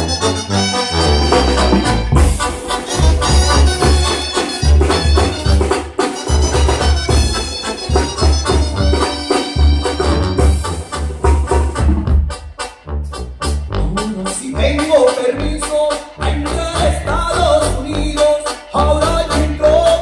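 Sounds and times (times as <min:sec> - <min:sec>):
brass band playing: 0:00.0 - 0:20.0
pulsing bass beat: 0:01.0 - 0:20.0
percussion hits: 0:01.3 - 0:13.6.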